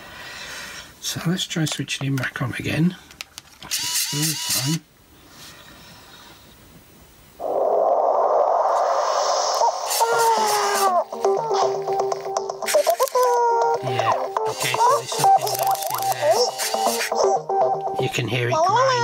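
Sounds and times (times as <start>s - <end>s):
electronic music with falling glides: 9.5s - 18.5s.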